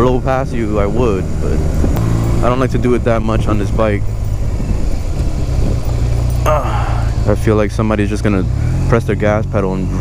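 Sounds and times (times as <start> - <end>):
motorcycle engine low hum: 0.0 - 10.0.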